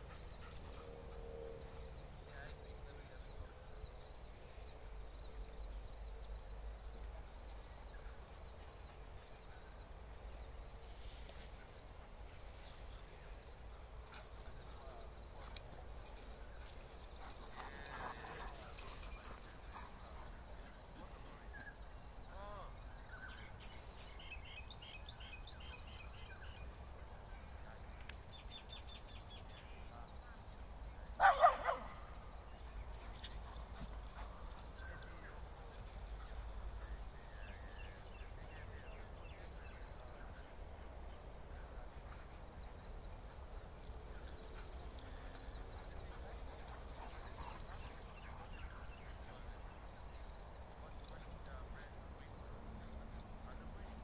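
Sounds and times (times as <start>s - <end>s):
dogs playing rough: 15.2s - 21.4s, 42.0s - 48.6s
dog yelps: 31.2s - 31.9s
dog barking: 31.2s - 32.2s.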